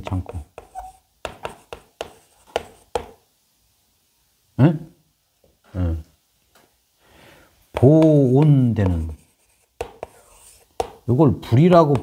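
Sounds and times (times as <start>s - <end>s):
chalk scratching on blackboard: 0.0s - 3.2s, 7.8s - 11.0s
chalk tapping on blackboard: 0.0s - 3.2s, 7.7s - 12.0s.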